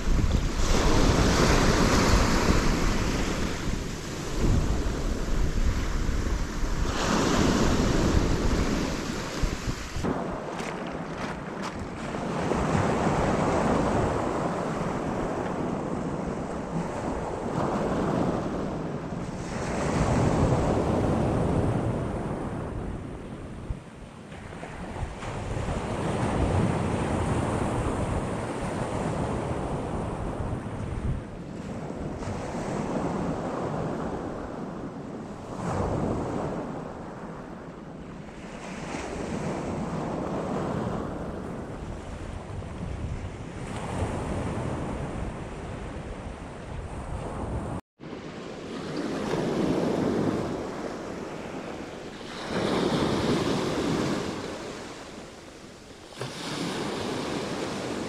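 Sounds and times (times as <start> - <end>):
waves breaking on pebble beach: 0.0 - 18.7, 48.0 - 58.0
wind buffeting microphone: 0.0 - 58.0.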